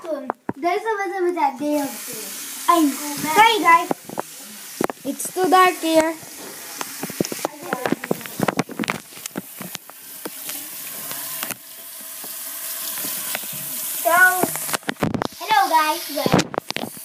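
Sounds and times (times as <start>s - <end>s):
small clicks and splashes: 5.8s - 15.5s, 16.1s - 17.0s
tap running into sink: 5.9s - 15.4s, 16.2s - 17.0s.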